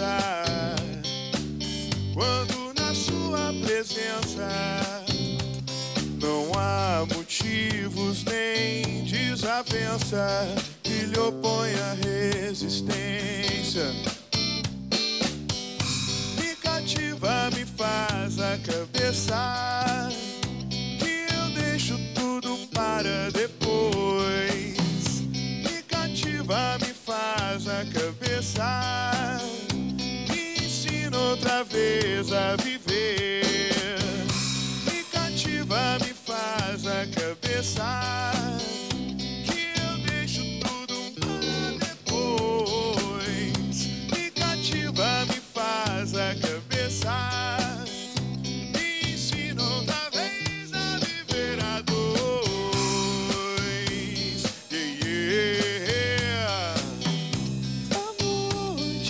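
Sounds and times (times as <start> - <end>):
drum kit: 0.0 - 59.0
electric bass: 0.0 - 59.0
electric guitar: 0.0 - 59.0.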